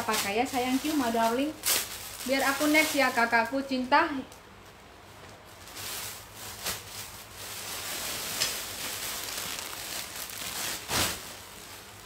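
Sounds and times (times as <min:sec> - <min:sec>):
fabric rustling: 0:00.0 - 0:03.4, 0:05.0 - 0:12.0.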